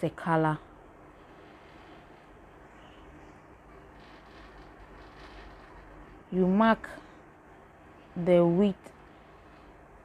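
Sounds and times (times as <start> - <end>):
low steady hiss: 0.0 - 10.0
hands rustling fabric: 1.1 - 7.4.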